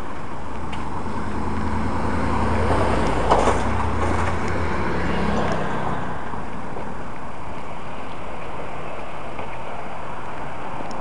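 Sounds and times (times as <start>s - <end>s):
street traffic: 0.0s - 11.0s
vehicle engine hum: 0.0s - 11.0s.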